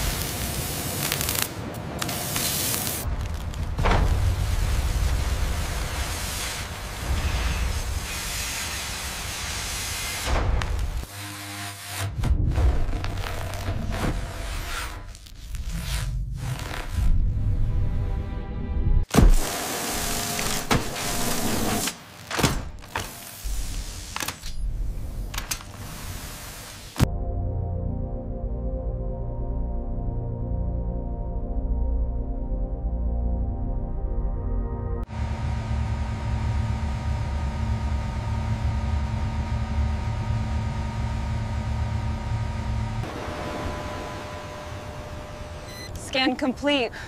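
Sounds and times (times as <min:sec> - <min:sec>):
cutting torch hiss: 0:00.0 - 0:03.1
low machinery rumble and hum: 0:34.5 - 0:47.0.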